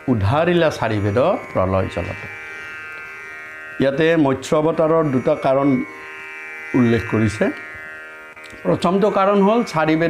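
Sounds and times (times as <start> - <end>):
high buzzing drone: 0.0 - 10.0
man speaking: 0.1 - 2.4, 3.8 - 5.9, 6.8 - 7.7, 8.6 - 10.0.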